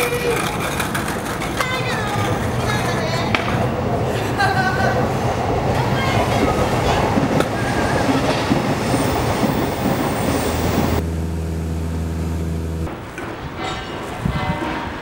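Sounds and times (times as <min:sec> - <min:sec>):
train rumbling past: 0:00.0 - 0:15.0
train wheel squeals: 0:06.0 - 0:11.0
steady low hum: 0:10.5 - 0:13.0.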